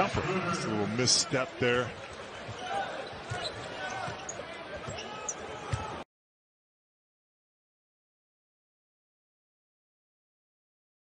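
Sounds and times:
crowd murmur in arena: 0:00.0 - 0:06.1.

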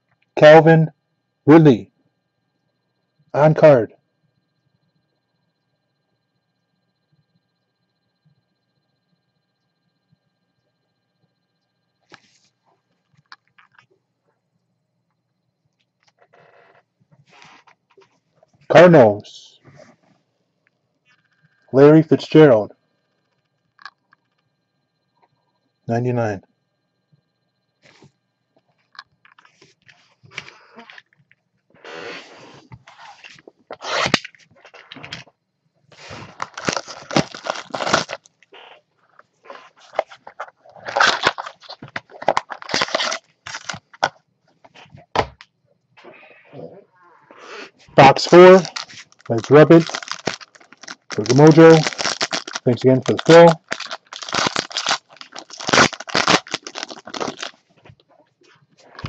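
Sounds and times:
trading cards rustling: 0:36.0 - 0:38.3, 0:39.5 - 0:44.1, 0:48.0 - 0:57.6.

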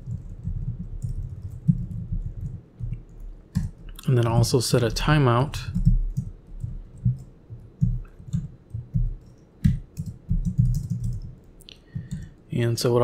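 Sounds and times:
typing on computer keyboard: 0:00.0 - 0:04.4, 0:05.4 - 0:12.4.

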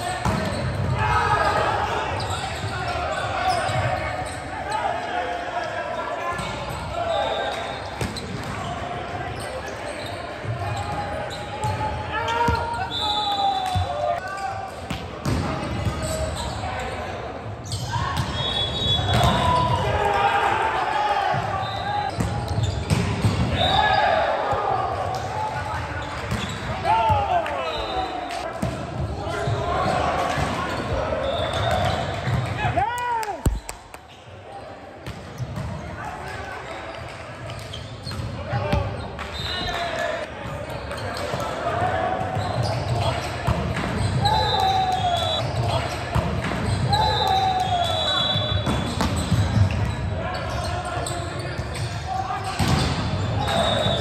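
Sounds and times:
players shouting: 0:00.0 - 0:14.7, 0:17.8 - 0:22.8, 0:23.4 - 0:26.1, 0:26.7 - 0:33.6, 0:44.1 - 0:46.0, 0:46.7 - 0:54.0.

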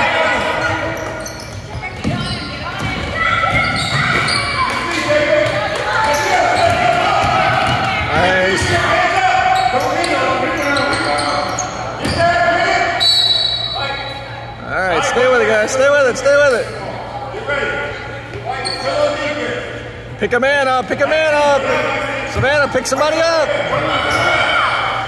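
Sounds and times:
basketball bouncing in a hall: 0:00.0 - 0:13.8
voices calling out: 0:00.0 - 0:20.1, 0:21.0 - 0:25.0.

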